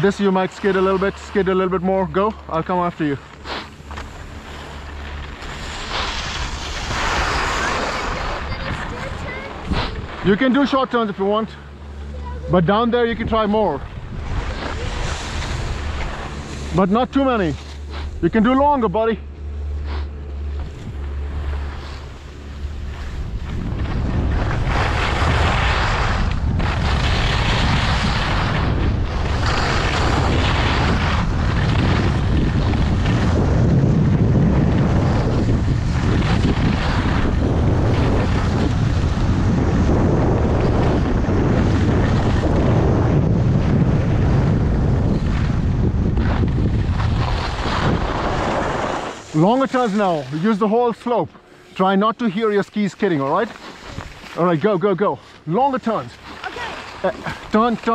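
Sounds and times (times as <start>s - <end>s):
skis scraping on snow: 0.0s - 57.9s
wind rushing over microphone: 0.0s - 57.9s.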